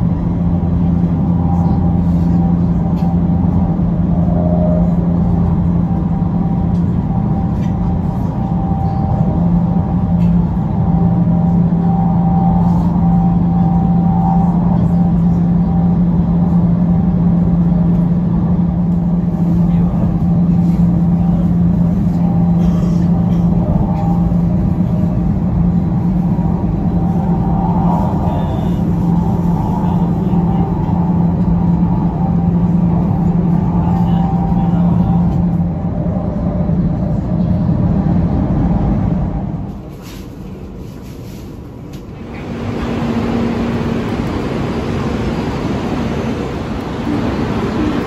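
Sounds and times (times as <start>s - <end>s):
train cabin running noise: 0.0s - 48.0s.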